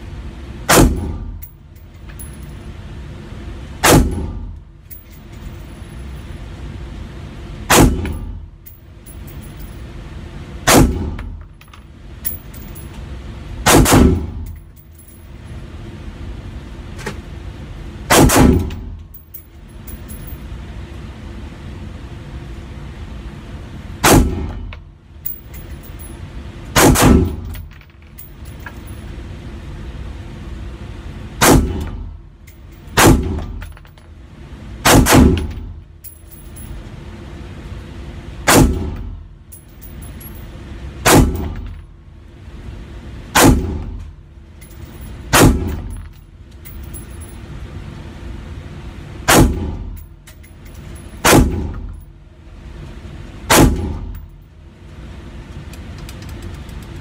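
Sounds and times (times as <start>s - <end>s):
gunshots echoing: 7.7s - 8.3s, 13.7s - 14.3s, 18.1s - 18.7s, 26.8s - 27.4s.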